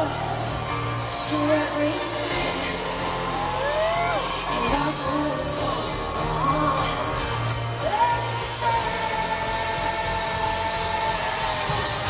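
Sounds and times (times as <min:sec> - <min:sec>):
loud electronic pop music: 0:00.0 - 0:12.0.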